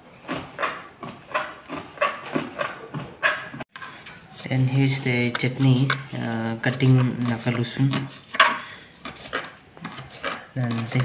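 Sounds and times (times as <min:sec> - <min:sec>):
hands kneading wet dough: 0:00.0 - 0:11.0.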